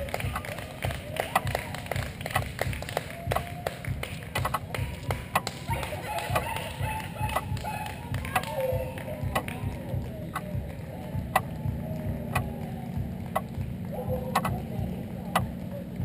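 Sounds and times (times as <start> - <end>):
spectators clapping: 0.0 - 16.0
voices cheering: 0.0 - 16.0.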